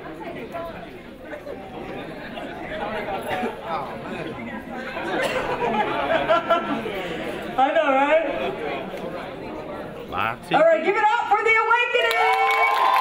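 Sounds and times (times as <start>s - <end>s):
murmur of people talking: 0.0s - 12.2s.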